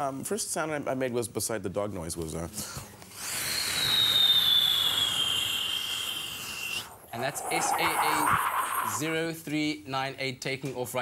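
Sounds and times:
man imitating jet taking off: 6.4 - 9.2.

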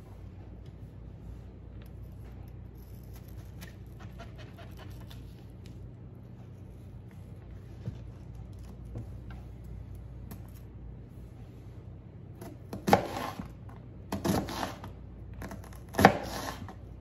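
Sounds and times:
steady low hum: 0.0 - 17.0
knife cutting onion: 1.8 - 5.6, 12.4 - 16.9.

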